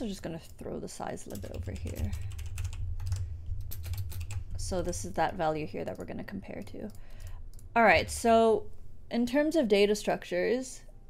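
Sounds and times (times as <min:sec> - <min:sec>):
steady low hum: 0:00.0 - 0:11.0
keyboard typing: 0:01.2 - 0:05.1.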